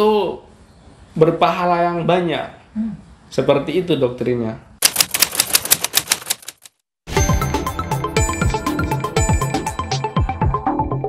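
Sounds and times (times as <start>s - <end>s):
typewriter key clicks: 4.8s - 6.8s.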